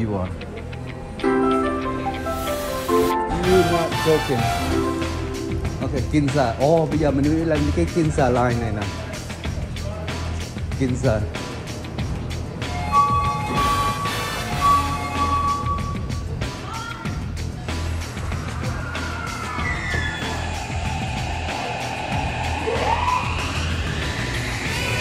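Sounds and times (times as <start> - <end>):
background music: 0.0 - 25.0
subway platform low rumble: 11.3 - 16.3, 20.4 - 25.0.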